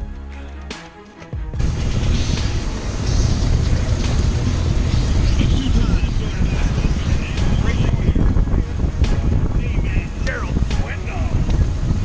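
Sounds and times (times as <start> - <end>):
outboard motor idling: 1.6 - 7.8
wind buffeting microphone: 1.6 - 12.0.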